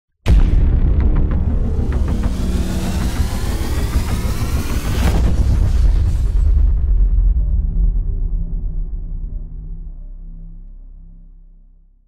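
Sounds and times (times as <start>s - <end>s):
deep rumble: 0.3s - 11.8s
rising engine-like whine: 1.7s - 6.2s.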